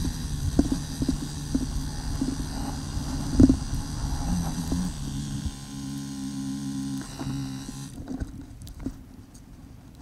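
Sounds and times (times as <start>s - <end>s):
dirt bike engine idling: 0.0s - 8.0s.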